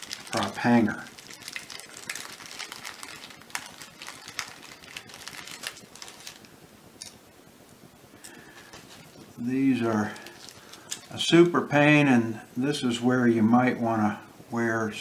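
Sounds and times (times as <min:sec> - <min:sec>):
plastic bag crinkling: 0:00.0 - 0:07.2, 0:08.2 - 0:11.7.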